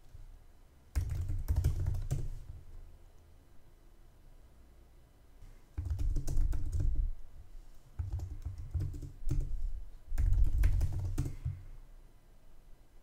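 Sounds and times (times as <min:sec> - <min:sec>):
typing on a computer keyboard: 0:01.0 - 0:02.5, 0:05.8 - 0:07.1, 0:08.0 - 0:09.6, 0:10.2 - 0:11.6.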